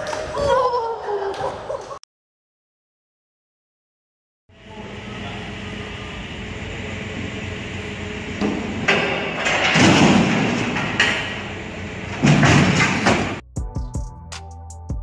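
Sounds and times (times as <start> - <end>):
forklift engine running: 4.5 - 13.4
metallic crashing and banging: 8.7 - 11.5, 12.1 - 13.4.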